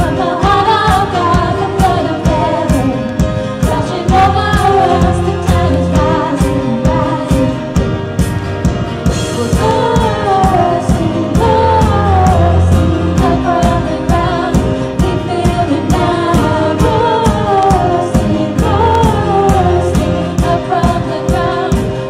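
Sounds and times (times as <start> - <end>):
woman singing: 0.0 - 7.8, 9.2 - 22.0
piano and keyboard chords: 0.0 - 22.0
steady drum beat: 0.0 - 22.0.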